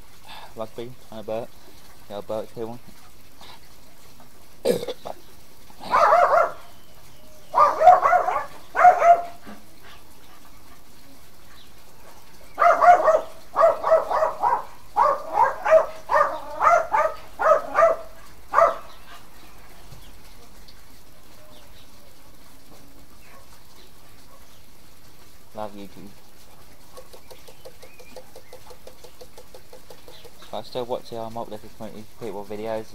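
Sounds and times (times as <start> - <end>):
dog barking: 5.8 - 6.8, 7.5 - 9.6, 12.0 - 19.3, 23.2 - 23.6, 24.2 - 24.6, 26.9 - 27.2.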